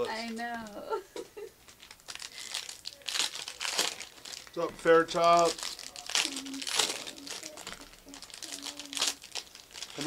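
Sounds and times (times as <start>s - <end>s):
plastic wrappers crinkling and tearing: 1.6s - 10.0s.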